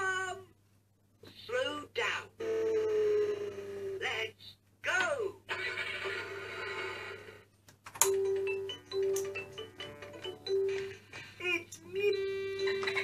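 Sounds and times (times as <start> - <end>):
plinky electronic melody: 8.0 - 10.9.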